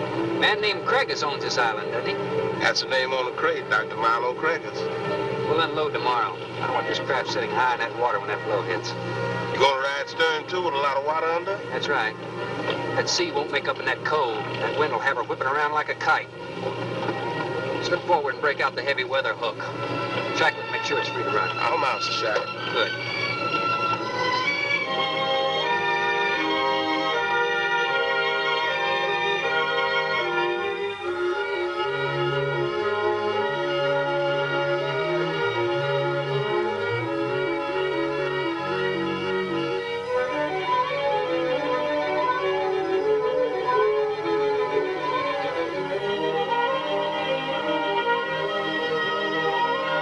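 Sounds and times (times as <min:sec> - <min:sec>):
orchestral music with bowed strings: 0:00.0 - 0:50.0.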